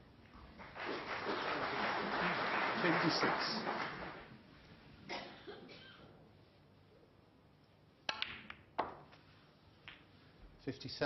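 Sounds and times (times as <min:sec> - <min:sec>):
snooker balls clicking: 0:08.1 - 0:09.2.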